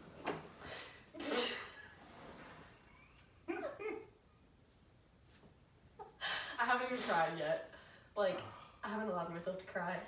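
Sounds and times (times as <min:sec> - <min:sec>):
woman laughing: 0:02.8 - 0:04.2.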